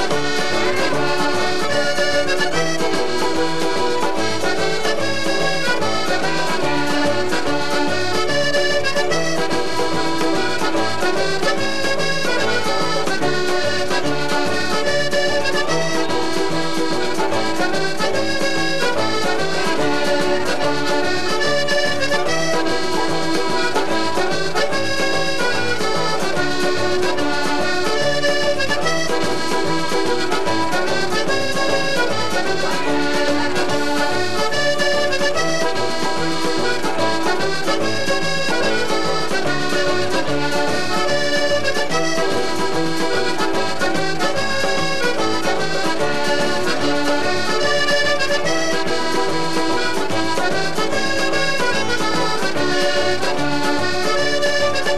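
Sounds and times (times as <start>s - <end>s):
accordion dance tune: 0.0s - 54.9s.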